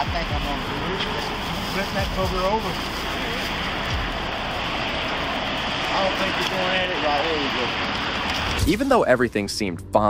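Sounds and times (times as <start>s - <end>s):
steady rushing noise: 0.0s - 9.8s.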